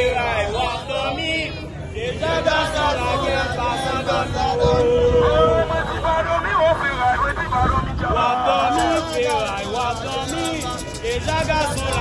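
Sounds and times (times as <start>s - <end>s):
crowd chanting and singing: 0.0s - 12.0s
man speaking through megaphone: 0.8s - 12.0s.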